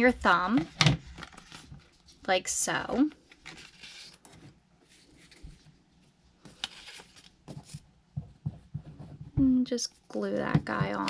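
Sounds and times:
paper rustling: 1.0 - 2.3, 2.9 - 5.7, 6.4 - 7.8.

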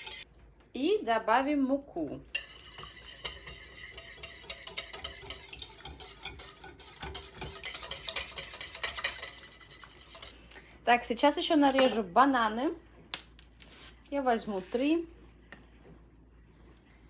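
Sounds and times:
whisk beating batter in a bowl: 2.3 - 10.5.

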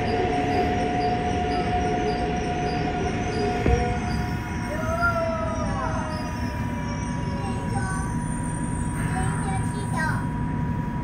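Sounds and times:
traction motor whine: 0.0 - 9.3
train running gear rumble: 0.0 - 11.0.

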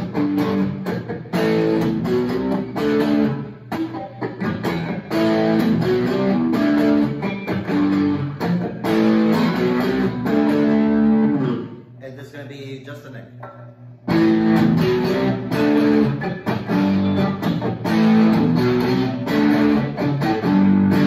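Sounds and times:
distorted electric guitar chords: 0.0 - 12.0, 13.4 - 21.0.

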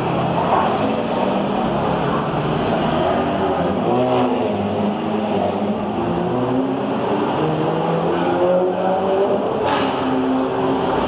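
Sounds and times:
car engines revving: 0.0 - 11.0.

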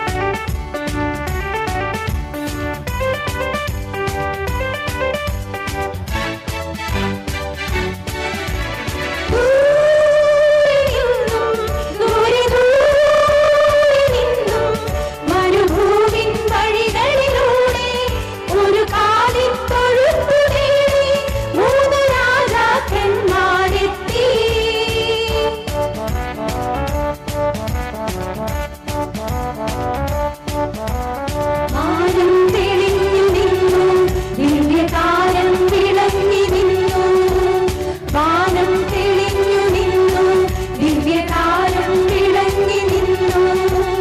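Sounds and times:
accompaniment with steady beat: 0.0 - 9.9, 10.8 - 44.0
women's vocal group singing: 9.3 - 25.6, 31.8 - 44.0.

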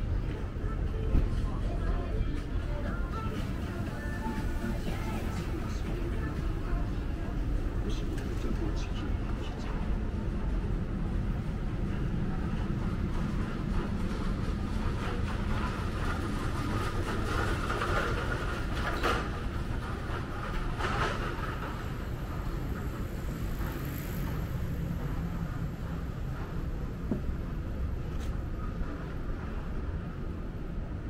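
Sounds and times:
faint passing voices: 0.0 - 26.6
city street rumble: 0.0 - 31.0.

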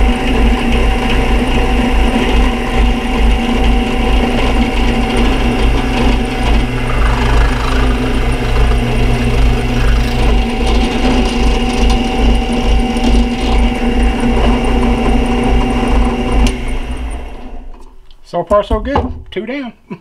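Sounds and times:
drill press motor hum: 2.2 - 17.9
drill bit cutting wood: 4.6 - 14.2.

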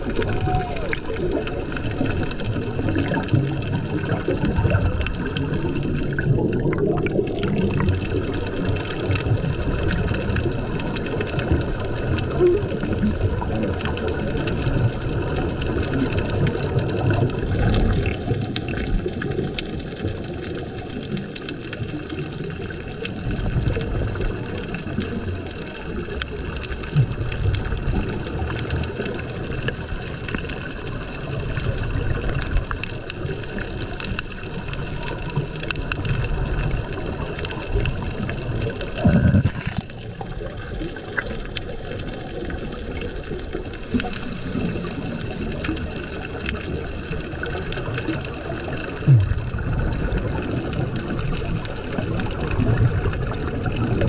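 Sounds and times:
muffled underwater wash: 0.0 - 54.0.

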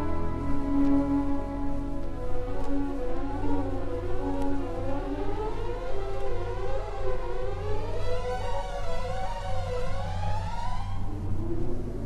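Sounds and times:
orchestral music: 0.0 - 4.8.

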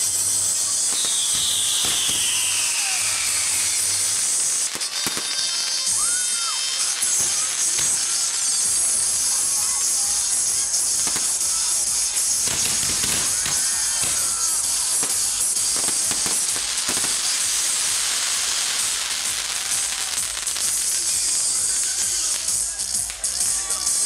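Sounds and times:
fireworks crackling pops: 0.0 - 24.0
fireworks sparks hissing: 0.0 - 24.0
fireworks whistling: 0.0 - 24.0.

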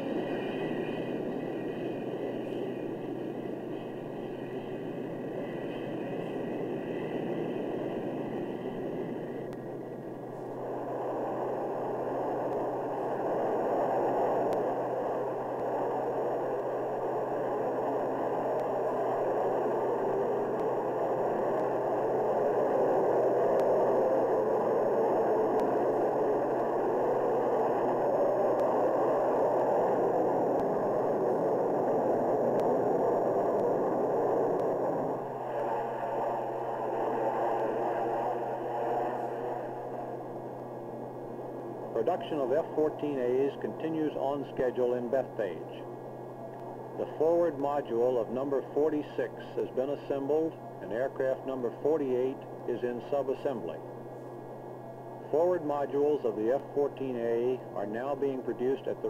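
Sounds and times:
jet engines roaring: 0.0 - 53.8.

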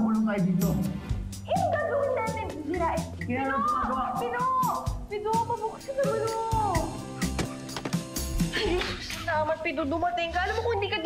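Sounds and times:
drama background music: 0.0 - 11.0.

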